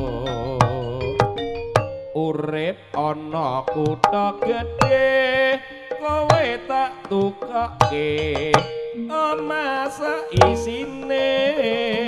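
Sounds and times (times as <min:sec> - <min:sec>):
person singing with pitch bends: 0:00.0 - 0:01.4, 0:02.2 - 0:12.0
gamelan music: 0:00.0 - 0:02.3, 0:03.0 - 0:12.0.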